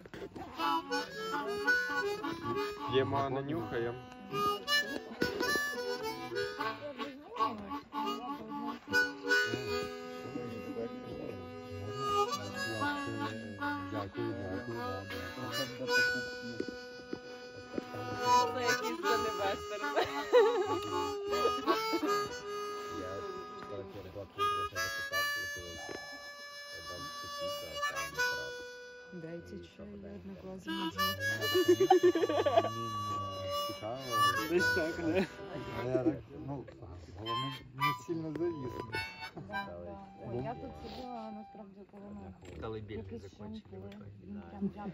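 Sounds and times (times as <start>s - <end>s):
harmonica playing slow tune: 0.0s - 43.6s.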